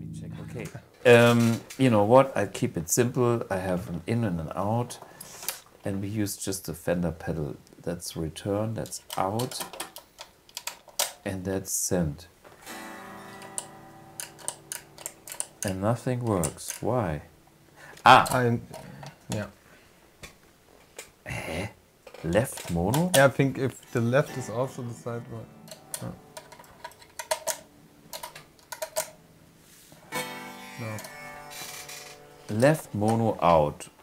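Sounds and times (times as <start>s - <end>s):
electric guitar chord ringing: 12.6s - 16.3s, 23.9s - 26.8s, 30.1s - 32.5s
effects pedal and cable clicks: 13.3s - 16.8s, 25.6s - 29.2s.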